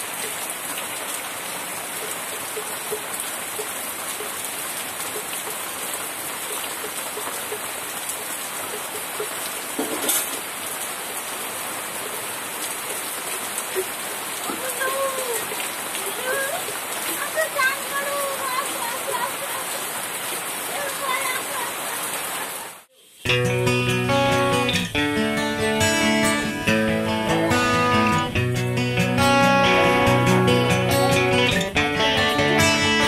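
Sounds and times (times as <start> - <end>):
heavy rain on trees: 0.0 - 23.3
water running off roof: 0.0 - 23.3.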